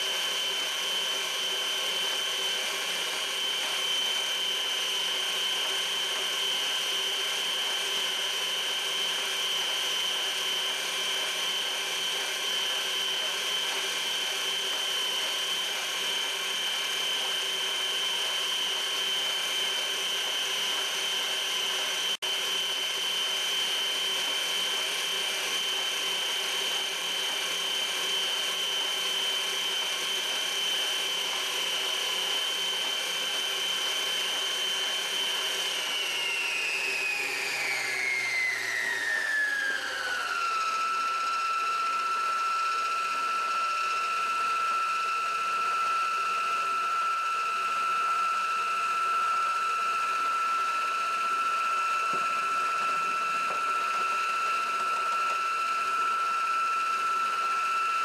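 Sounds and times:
stand mixer motor whining: 0.0s - 58.0s.

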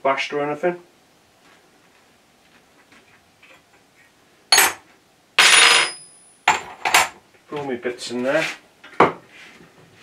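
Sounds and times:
sharp metal clank: 4.5s - 4.8s.

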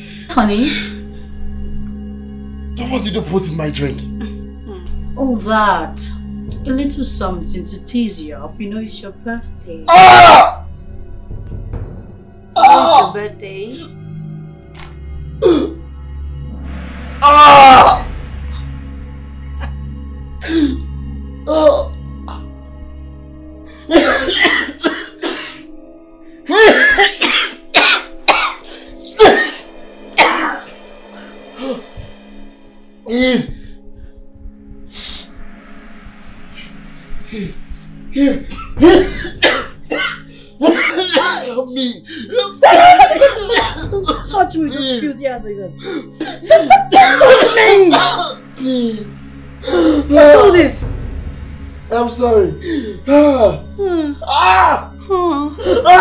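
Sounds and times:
soft background music: 0.0s - 56.0s
man crying out in pain: 9.9s - 10.6s, 17.2s - 18.2s, 38.2s - 44.9s, 45.8s - 50.5s, 53.1s - 56.0s
man coughing with gasps: 23.9s - 25.7s, 26.5s - 30.7s, 38.2s - 45.0s, 45.8s - 49.0s.

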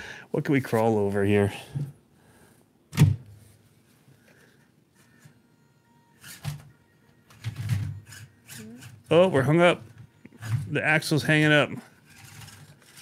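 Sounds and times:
toy crawler knocking and scraping: 10.4s - 13.0s.

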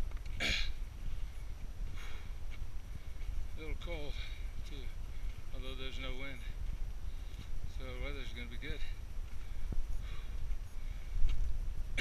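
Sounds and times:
faint footsteps on rocky trail: 0.0s - 12.0s
soft hiss: 0.0s - 12.0s
wind buffeting microphone: 0.0s - 12.0s.

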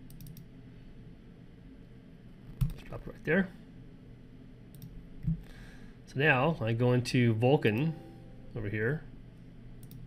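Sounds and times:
computer mouse clicks: 0.0s - 0.5s, 4.7s - 5.4s, 9.8s - 10.0s.

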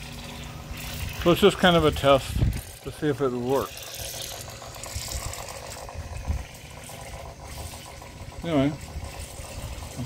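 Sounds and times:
water pump buzzing: 0.0s - 10.0s.

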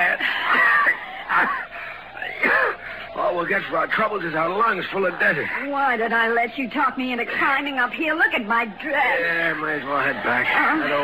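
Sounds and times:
person wheezing and coughing: 0.0s - 2.9s.

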